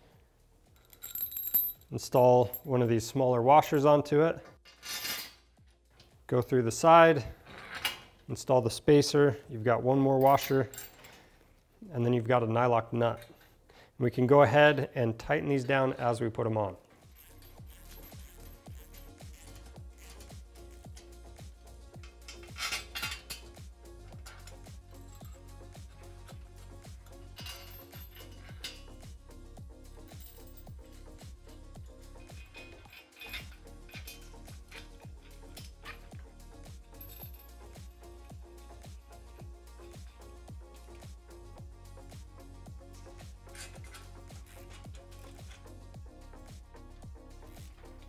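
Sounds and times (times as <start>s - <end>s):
metallic clinks of bolts and nuts: 0.6s - 3.0s, 4.6s - 6.2s, 10.2s - 11.3s, 17.0s - 21.2s, 21.9s - 29.1s, 30.0s - 38.4s, 39.3s - 41.1s, 43.4s - 45.7s
background music with beat: 17.1s - 48.0s.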